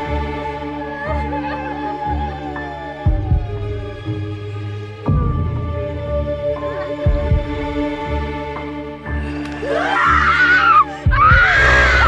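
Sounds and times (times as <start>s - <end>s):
tense horror drone: 0.0s - 12.0s
low heartbeat-like thumps: 2.4s - 8.5s, 11.1s - 12.0s.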